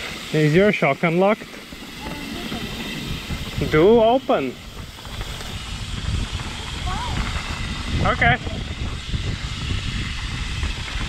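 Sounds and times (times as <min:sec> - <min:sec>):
bike tyres rolling on dirt: 0:00.0 - 0:11.0
wind buffeting microphone: 0:01.4 - 0:11.0.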